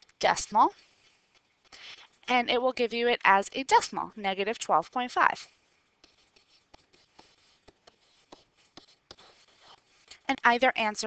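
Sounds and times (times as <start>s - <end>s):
stylus ticking and scratching: 0.0s - 10.9s.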